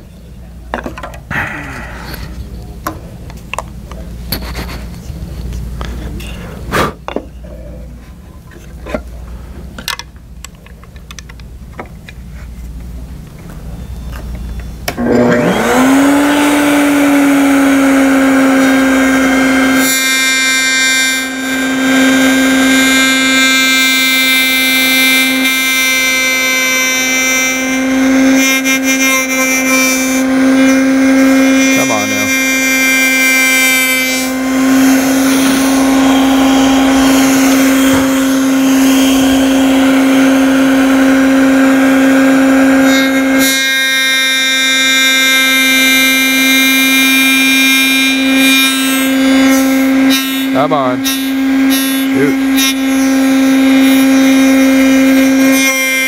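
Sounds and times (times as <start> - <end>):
router whining: 13.8 - 56.0
router bit cutting wood: 14.9 - 56.0.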